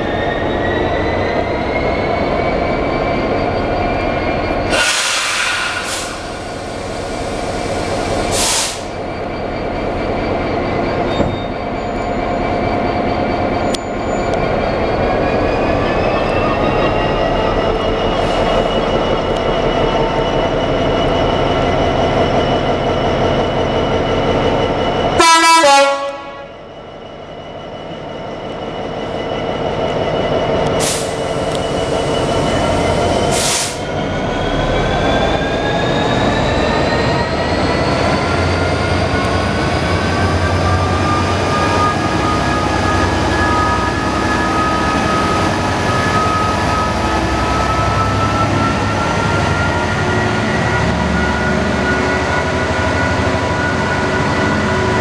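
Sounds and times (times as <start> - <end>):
diesel locomotive engine running: 0.0 - 55.0
train horn: 25.2 - 26.6.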